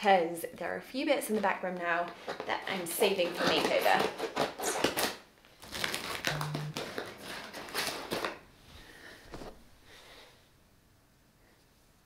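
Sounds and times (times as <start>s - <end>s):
plastic packaging crinkling: 2.1s - 8.4s.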